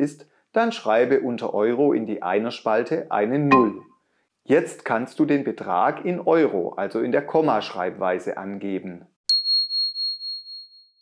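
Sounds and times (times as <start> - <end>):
high bell-like ding: 3.5 - 3.9.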